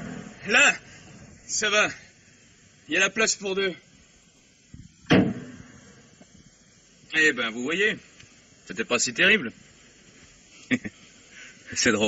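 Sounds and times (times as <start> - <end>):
car door slamming: 5.1 - 5.6.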